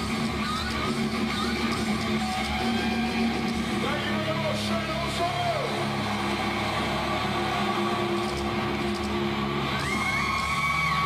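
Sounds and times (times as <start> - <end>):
crowd yelling and whooping: 1.5 - 11.0.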